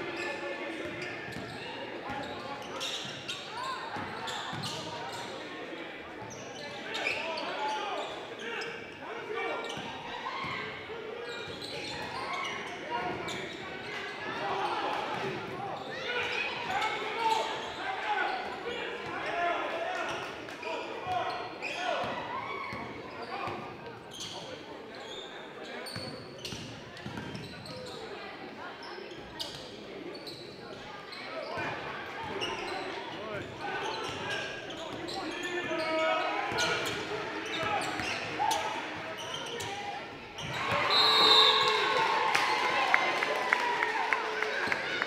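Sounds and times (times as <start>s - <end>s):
echoing voices in a gym: 0.0s - 45.0s.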